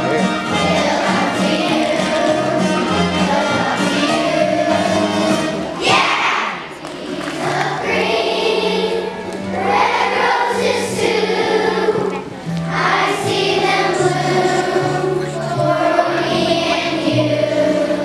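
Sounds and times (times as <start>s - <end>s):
children's choir singing: 0.0s - 18.0s
instrumental accompaniment: 0.0s - 18.0s.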